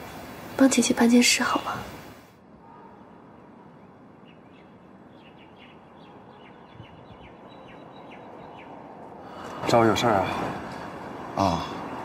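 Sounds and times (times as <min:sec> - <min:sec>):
low outdoor background: 0:00.0 - 0:12.0
birds chirping: 0:00.7 - 0:12.0.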